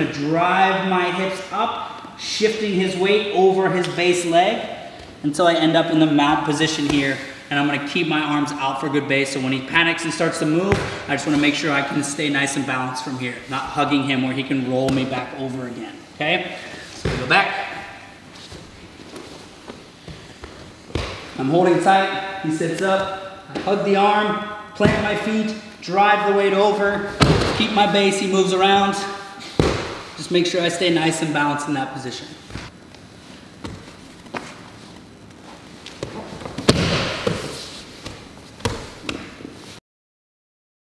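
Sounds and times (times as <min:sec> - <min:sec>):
bodies thudding on foam mat: 0:27.2 - 0:27.7, 0:36.4 - 0:39.2
bodies thumping on a mat: 0:27.2 - 0:27.7, 0:36.4 - 0:37.5.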